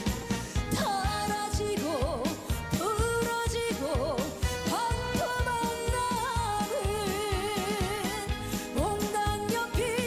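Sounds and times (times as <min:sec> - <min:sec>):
backing band with drum beat: 0:00.0 - 0:10.0.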